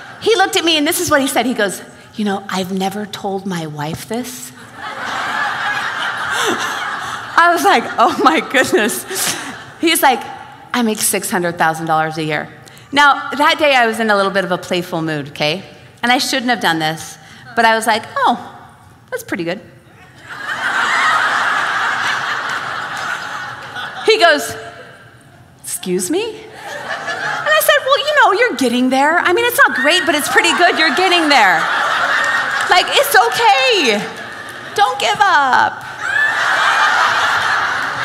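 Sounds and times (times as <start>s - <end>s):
audience laughing: 4.6s - 9.8s, 20.0s - 24.8s, 26.5s - 28.1s, 29.7s - 38.0s.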